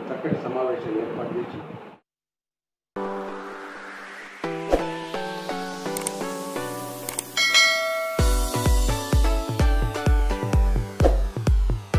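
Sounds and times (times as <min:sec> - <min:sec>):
ringing chime: 0:07.4 - 0:08.7
electronic dance music: 0:07.6 - 0:11.9.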